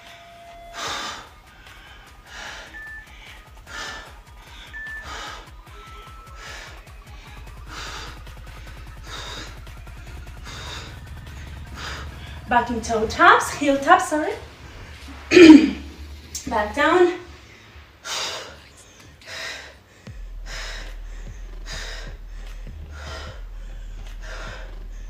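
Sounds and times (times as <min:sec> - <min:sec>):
faint background music with beat: 0:00.0 - 0:25.0
woman breathing hard: 0:00.7 - 0:13.4, 0:17.3 - 0:25.0.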